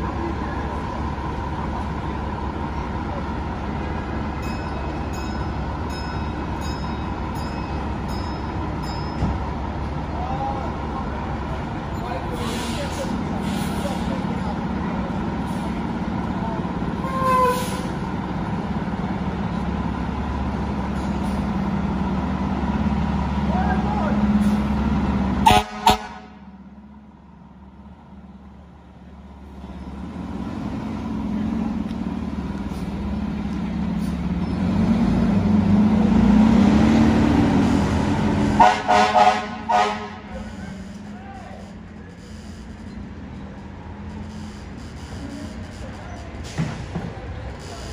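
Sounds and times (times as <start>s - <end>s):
fire engine diesel engine running: 0.0s - 47.9s
air horn blasts: 17.0s - 17.8s, 25.4s - 26.4s, 38.6s - 41.5s.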